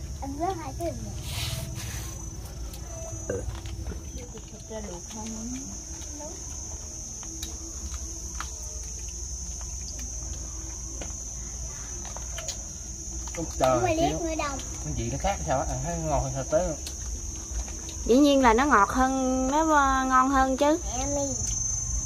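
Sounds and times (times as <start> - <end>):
insects chirring: 0.0 - 22.0.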